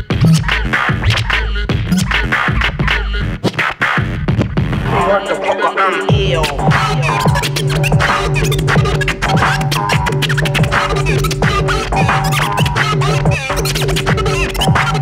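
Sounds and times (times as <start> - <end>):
bass-heavy electronic beat: 0.0 - 15.0
vinyl record scratching: 0.0 - 15.0.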